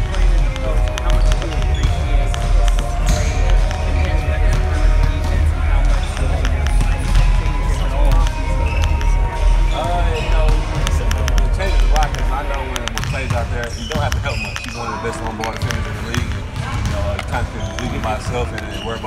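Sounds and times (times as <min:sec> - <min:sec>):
basketballs bouncing on gym floor: 0:00.0 - 0:19.0
crowd hubbub: 0:00.0 - 0:19.0
man talking: 0:00.0 - 0:19.0.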